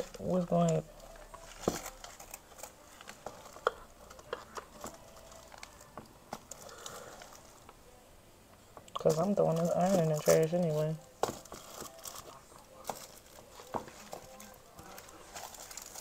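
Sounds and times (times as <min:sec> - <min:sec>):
foil sheet crinkling and clicking: 0:09.0 - 0:16.0.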